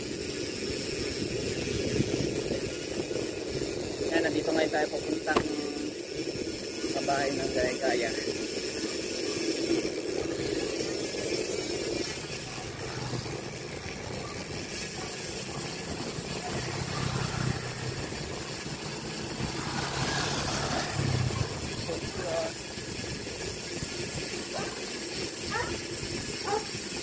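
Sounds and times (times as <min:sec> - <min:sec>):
wind on microphone: 0:00.7 - 0:04.3
motorcycle engine humming: 0:05.0 - 0:06.5, 0:08.6 - 0:23.8.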